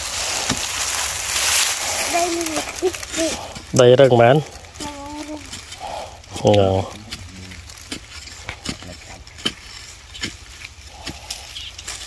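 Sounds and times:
digging tool striking hard earth: 0.0 - 2.4, 5.4 - 12.0.

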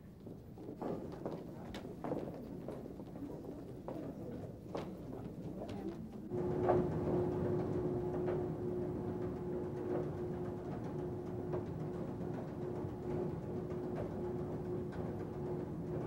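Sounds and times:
soft timpani-like drum strikes: 6.3 - 16.0.

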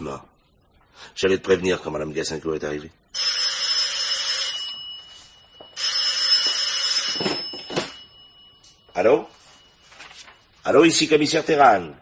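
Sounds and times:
telephone bell ringing: 3.2 - 10.2.

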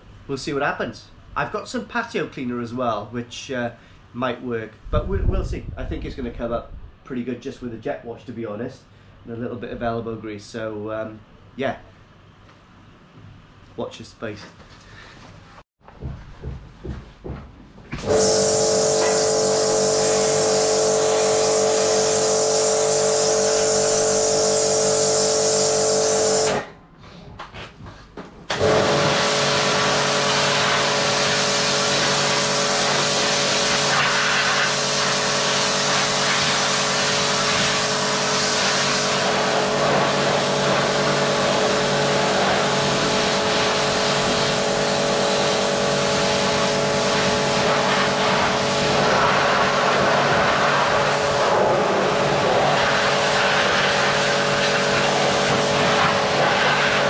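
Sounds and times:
water jet hissing on metal: 18.0 - 26.6, 29.0 - 57.0
pressure washer motor whining: 18.0 - 26.7, 28.5 - 57.0.

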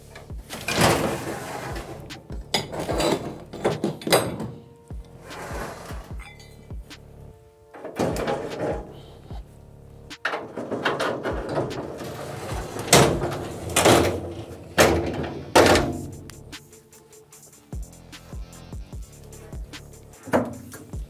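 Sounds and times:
metal loading deck sliding: 0.0 - 6.6, 7.7 - 9.2, 10.2 - 16.5, 20.2 - 21.0
background music with beat: 0.0 - 10.5, 11.2 - 21.0
metal clunks and clicks: 0.1 - 5.2, 7.7 - 9.0, 10.1 - 16.4, 20.3 - 21.0.

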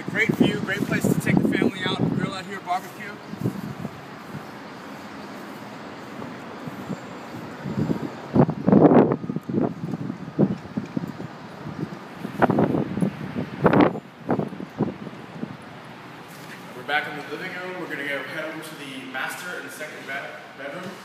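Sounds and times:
wind buffeting microphone: 0.0 - 16.3
outdoor city hum: 0.0 - 21.0.

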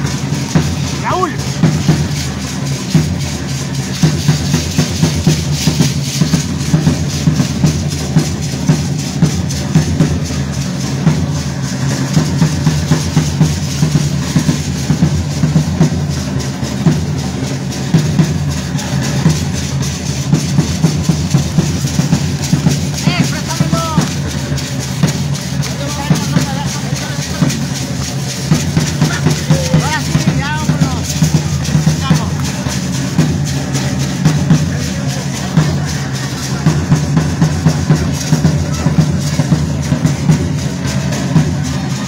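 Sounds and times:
bass and snare drums beat: 0.0 - 42.0.

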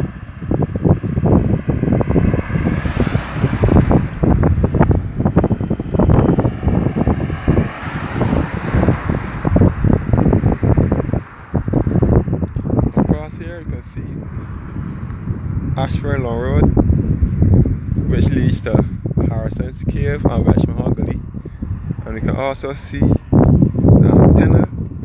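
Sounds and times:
wind buffeting microphone: 0.0 - 25.0
car passing with tyre hiss: 0.1 - 12.8.

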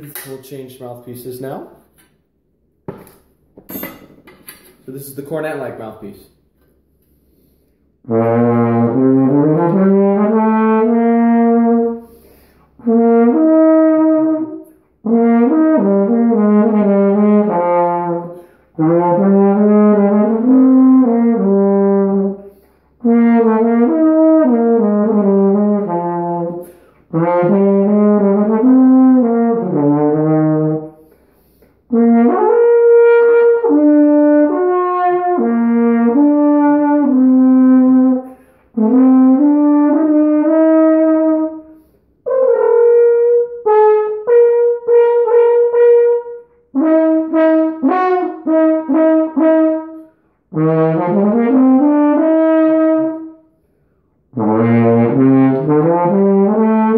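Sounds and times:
player breathing: 7.0 - 7.9, 12.0 - 12.8
brass horn playing slow melody: 8.0 - 56.9.

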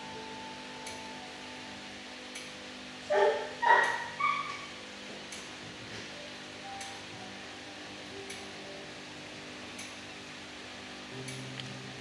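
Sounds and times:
dog barking: 3.1 - 4.7.

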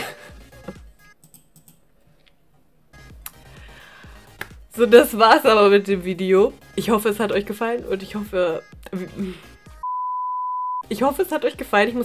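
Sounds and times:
censor bleep tone: 9.8 - 10.8.

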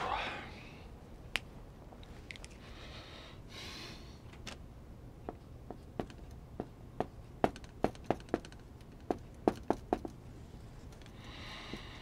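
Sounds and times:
marker tapping on whiteboard: 5.3 - 10.2.

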